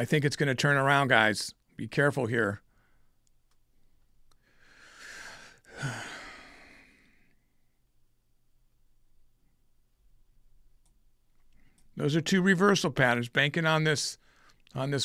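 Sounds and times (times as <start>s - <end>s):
man sighing: 4.6s - 7.2s.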